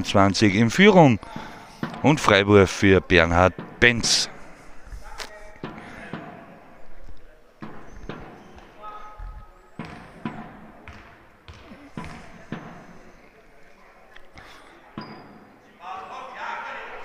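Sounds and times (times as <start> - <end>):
basketball bouncing on hard floor: 7.6 - 8.8, 9.8 - 13.0.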